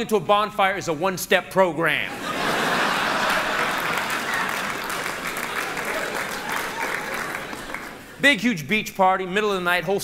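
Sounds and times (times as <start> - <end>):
audience applauding: 2.5 - 8.2.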